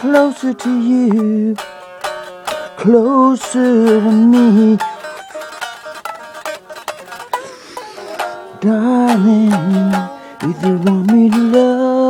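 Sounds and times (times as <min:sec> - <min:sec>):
person singing: 0:00.0 - 0:05.3, 0:07.2 - 0:12.0
guitar strumming chords: 0:00.0 - 0:12.0.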